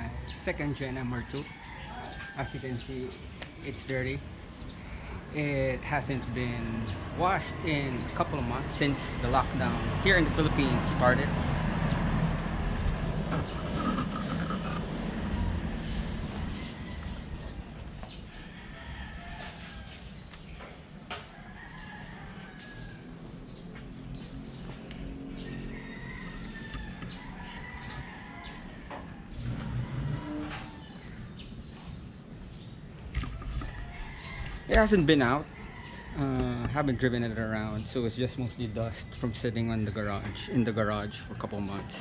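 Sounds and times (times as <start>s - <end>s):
birds chirping and calling: 0.0s - 42.0s.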